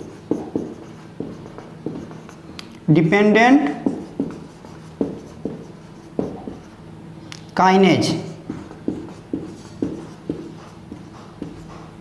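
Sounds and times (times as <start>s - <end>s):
marker writing on whiteboard: 0.0s - 2.6s, 3.6s - 6.8s, 8.2s - 12.0s.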